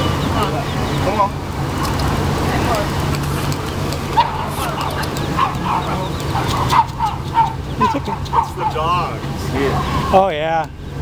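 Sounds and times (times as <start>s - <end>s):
faint voices: 0.0s - 10.8s
ducks chirping: 0.0s - 11.0s
low traffic hum: 0.0s - 11.0s.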